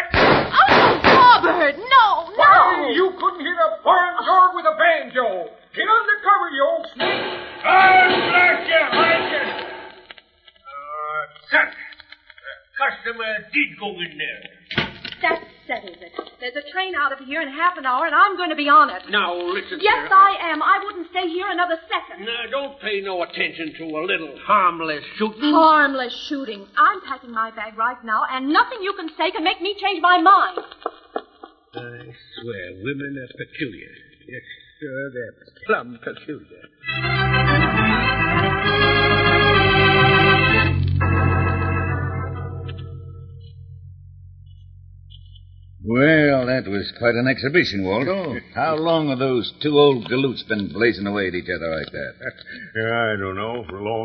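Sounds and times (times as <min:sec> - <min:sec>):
radio drama dialogue: 0:00.0 - 0:37.9, 0:44.5 - 0:54.0
held low organ chord: 0:36.8 - 0:46.4.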